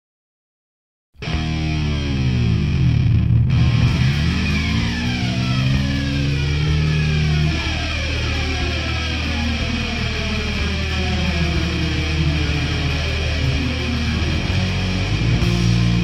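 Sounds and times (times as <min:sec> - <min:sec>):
distorted electric guitars: 0:01.2 - 0:16.0
low bass: 0:01.2 - 0:16.0.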